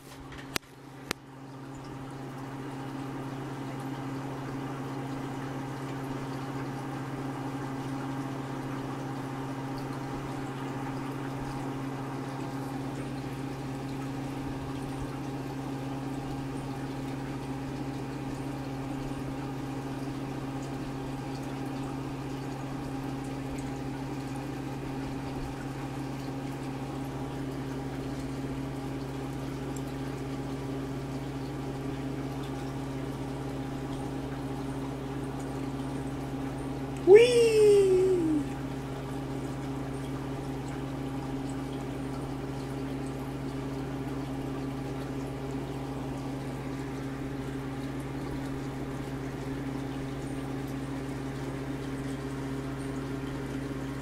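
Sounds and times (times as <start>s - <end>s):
low equipment hum: 0.0s - 54.0s.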